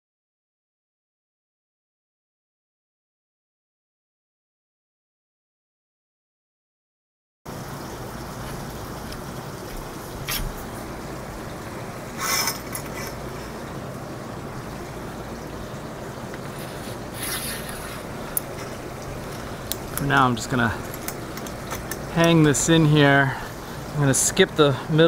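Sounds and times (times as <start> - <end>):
steady background noise: 7.5 - 25.0
metal fittings clinking and rattling: 12.2 - 13.4, 16.3 - 22.8.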